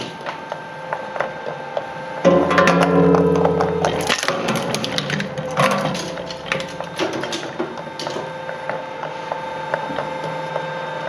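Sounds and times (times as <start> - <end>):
loud low drone: 2.2 - 7.0
metal cans crunching in shredder: 2.3 - 8.2.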